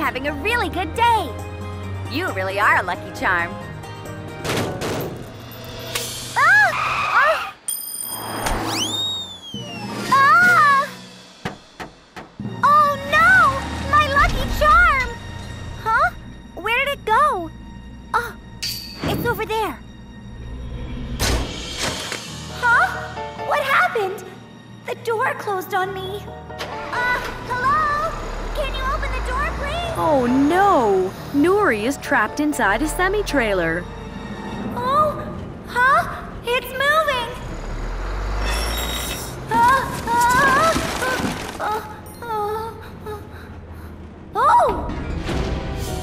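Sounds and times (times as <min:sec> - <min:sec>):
background music: 0:00.0 - 0:08.3, 0:09.4 - 0:46.0
cartoon truck engine rumble: 0:08.5 - 0:18.6, 0:26.2 - 0:46.0.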